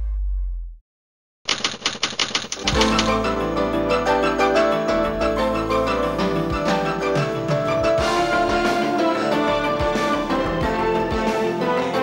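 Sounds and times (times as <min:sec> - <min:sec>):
typewriter keystroke clicks: 0:01.5 - 0:03.3
theme music with low bass: 0:02.8 - 0:12.0.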